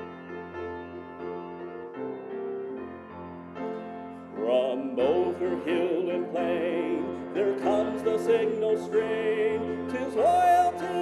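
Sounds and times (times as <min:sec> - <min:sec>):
piano hymn accompaniment: 0:00.0 - 0:11.0.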